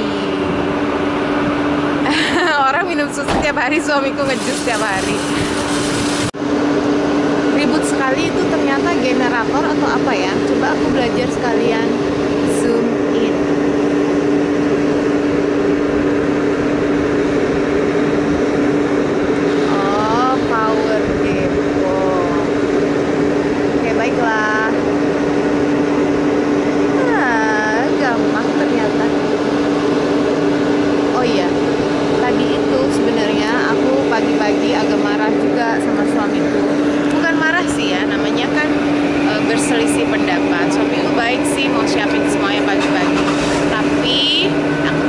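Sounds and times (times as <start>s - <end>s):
generator humming: 0.0s - 45.0s.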